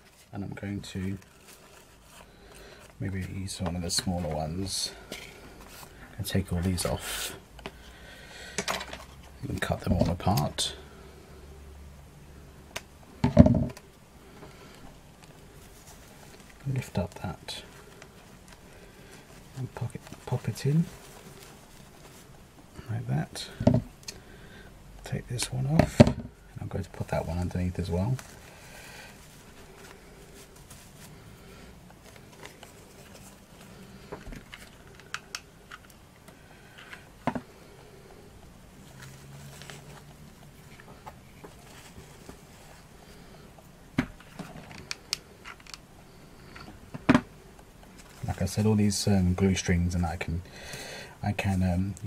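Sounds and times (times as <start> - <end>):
knock and clatter of objects: 13.2 - 13.8, 23.6 - 23.9.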